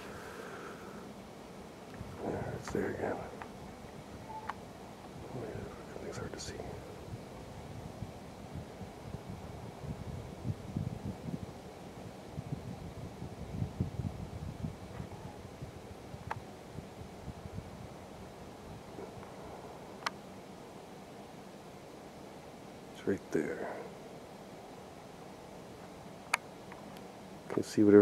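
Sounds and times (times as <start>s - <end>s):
wind buffeting microphone: 1.8s - 20.0s.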